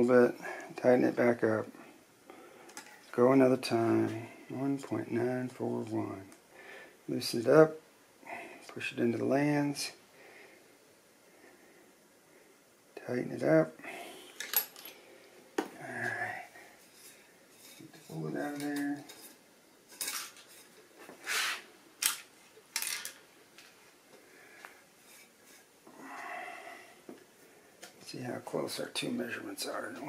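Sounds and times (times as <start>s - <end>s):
metal scrape: 16.8s - 21.7s, 25.0s - 25.7s.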